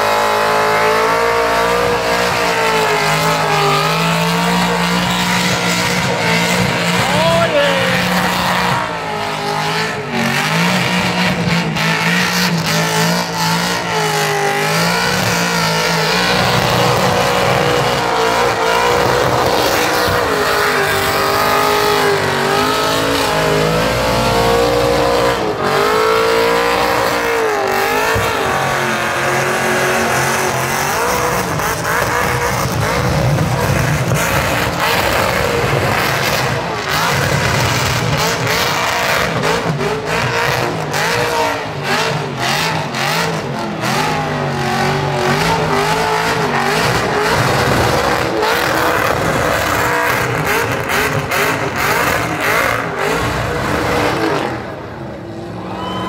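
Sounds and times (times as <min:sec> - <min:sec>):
car engine revving high: 0:00.0 - 0:56.0.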